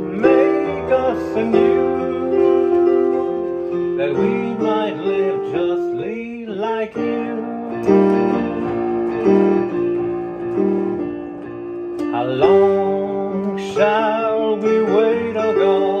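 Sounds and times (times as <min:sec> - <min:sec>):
man singing: 0:00.0 - 0:09.1, 0:12.1 - 0:16.0
digital piano hymn accompaniment: 0:00.0 - 0:16.0.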